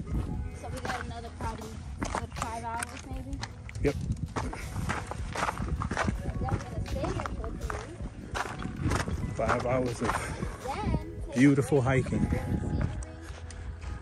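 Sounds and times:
background music: 0.0 - 14.0
footsteps on rocky trail: 0.0 - 14.0
wind rumbling on microphone: 0.0 - 14.0.

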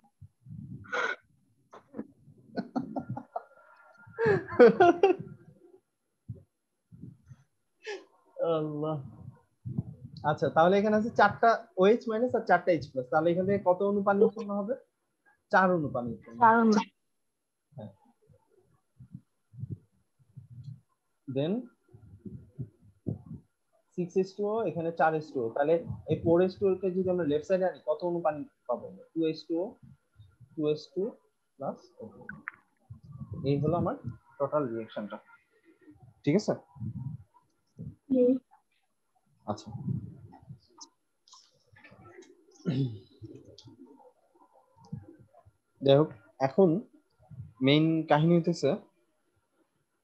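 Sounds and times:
man speaking: 8.4 - 9.2, 10.1 - 14.8, 15.5 - 16.9, 21.3 - 21.7, 24.0 - 29.8, 30.6 - 32.2, 33.4 - 35.3, 36.3 - 36.6, 39.5 - 40.1, 47.6 - 48.8
man murmuring: 42.7 - 43.0.

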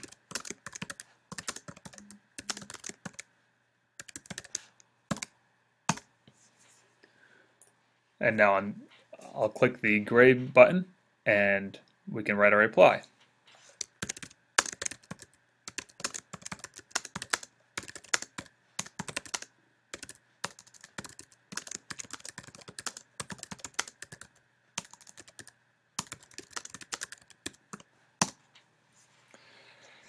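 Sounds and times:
typing on computer keyboard: 0.0 - 3.3, 4.0 - 5.3, 13.8 - 28.4.

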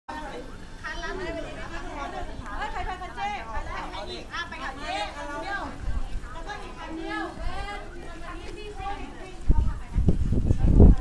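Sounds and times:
women chatting: 0.1 - 11.0.

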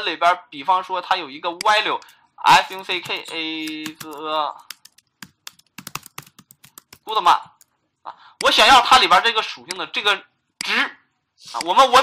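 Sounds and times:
typing on a computer keyboard: 2.6 - 7.7.

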